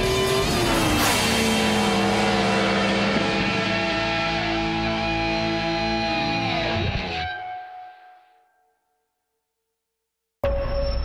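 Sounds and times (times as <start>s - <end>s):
motorcycle engine running: 0.0s - 6.0s.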